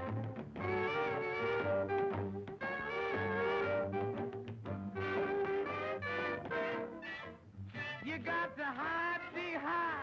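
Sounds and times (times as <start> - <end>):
swing jazz band with brass: 0.0 - 7.3.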